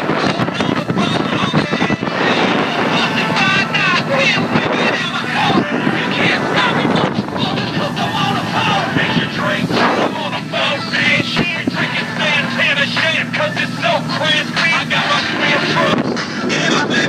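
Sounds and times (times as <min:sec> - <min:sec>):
boat engine: 0:00.0 - 0:17.0
raised voices: 0:00.0 - 0:17.0
rushing water: 0:00.0 - 0:17.0
wind on microphone: 0:00.0 - 0:17.0.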